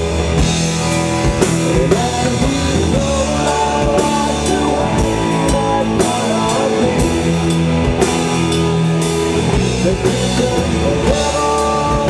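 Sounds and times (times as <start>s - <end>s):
rock band playing instrumental: 0.0s - 12.0s.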